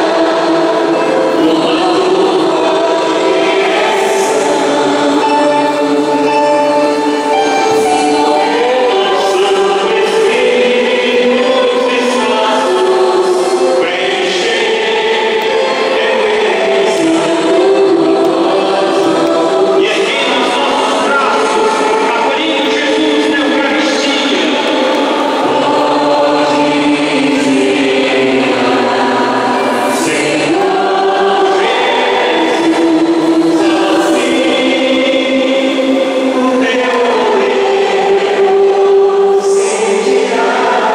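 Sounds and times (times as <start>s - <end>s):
congregation singing a hymn: 0.0s - 40.9s.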